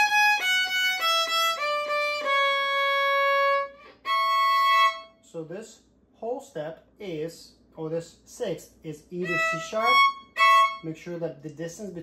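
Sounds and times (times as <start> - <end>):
solo violin playing: 0.0 - 5.2, 9.2 - 11.0.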